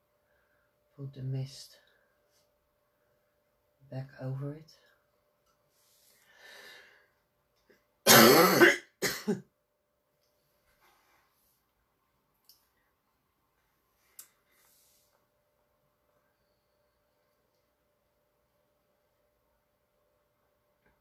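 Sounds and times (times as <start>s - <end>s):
person clearing throat: 8.1s - 9.5s.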